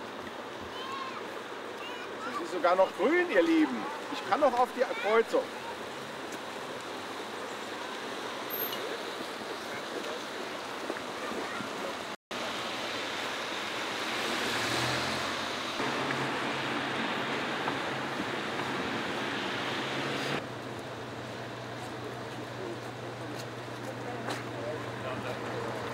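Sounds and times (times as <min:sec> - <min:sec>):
car tyres hissing on wet road: 0:12.4 - 0:20.4.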